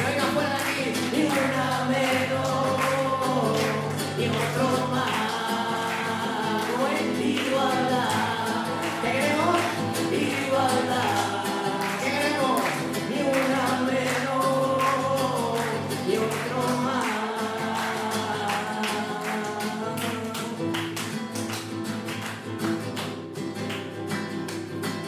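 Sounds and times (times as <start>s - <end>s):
man singing: 0.0s - 21.2s
strummed acoustic guitar: 0.0s - 25.0s.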